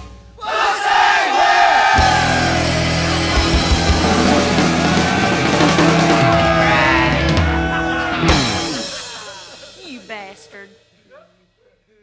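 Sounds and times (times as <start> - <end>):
rock band playing: 1.9 - 10.6.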